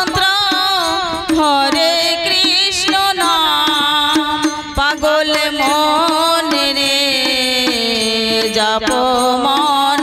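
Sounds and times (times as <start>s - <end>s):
harmonium: 0.0s - 10.0s
sharp percussion strikes: 0.0s - 10.0s
woman singing devotional song: 0.0s - 10.0s.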